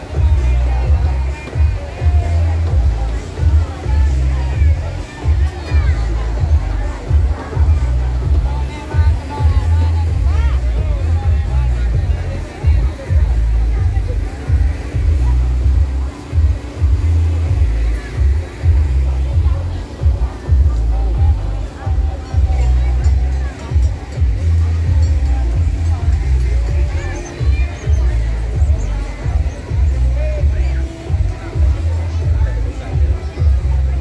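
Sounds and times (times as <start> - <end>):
crowd chatter: 0.0 - 34.0
loud music with heavy bass: 0.0 - 34.0.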